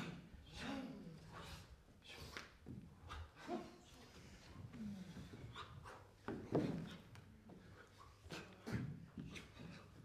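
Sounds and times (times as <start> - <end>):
people breathing hard: 1.2 - 10.0.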